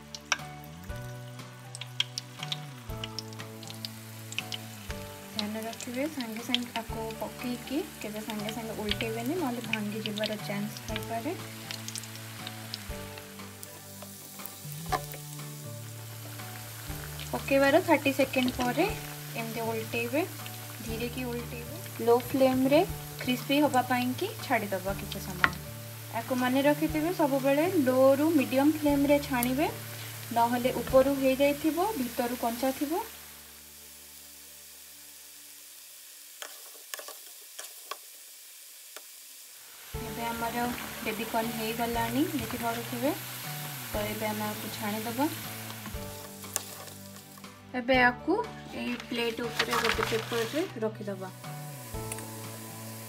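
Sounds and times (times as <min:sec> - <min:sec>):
oil popping: 0:00.0 - 0:23.9, 0:24.7 - 0:27.1, 0:39.8 - 0:47.5, 0:48.8 - 0:50.7, 0:51.8 - 0:53.0
food deep-frying in oil: 0:00.0 - 0:47.6, 0:48.7 - 0:53.0.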